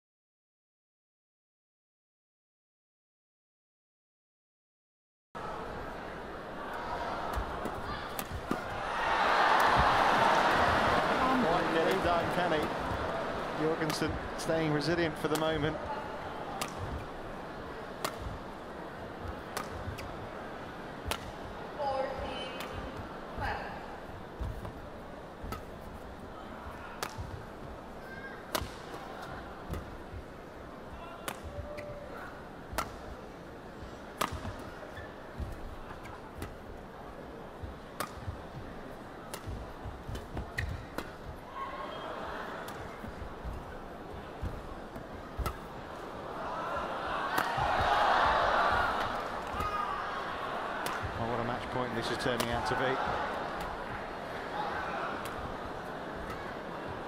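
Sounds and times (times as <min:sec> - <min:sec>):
crowd noise: 0:05.4 - 0:57.0
racket striking shuttlecock: 0:07.3 - 0:08.8, 0:16.5 - 0:17.1, 0:18.0 - 0:18.4, 0:19.5 - 0:20.2, 0:21.0 - 0:21.4, 0:27.0 - 0:27.4, 0:28.5 - 0:29.0, 0:32.7 - 0:33.0, 0:34.2 - 0:34.6, 0:38.0 - 0:38.3, 0:39.3 - 0:41.3, 0:44.4 - 0:45.8, 0:47.3 - 0:47.9, 0:50.8 - 0:51.1.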